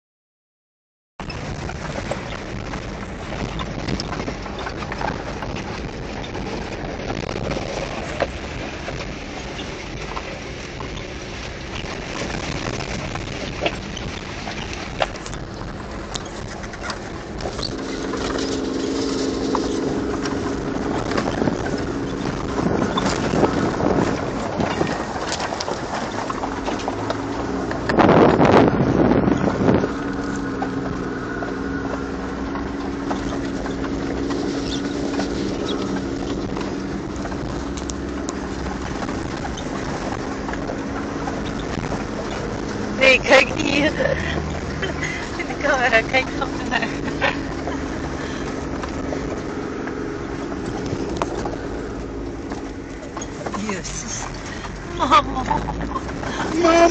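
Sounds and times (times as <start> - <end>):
knocks and rattles: 1.2 - 56.9
vehicle engine running under load: 1.2 - 56.9
wind rushing on microphone: 1.2 - 56.9.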